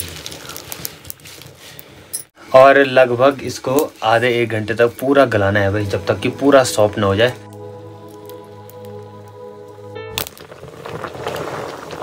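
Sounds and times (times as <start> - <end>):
greens boiling in a pot: 0.0 - 2.1, 10.2 - 12.0
background music: 4.7 - 10.6.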